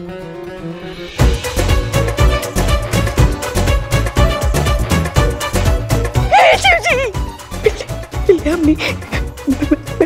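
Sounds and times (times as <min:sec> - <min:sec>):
comic background music: 0:00.0 - 0:10.0.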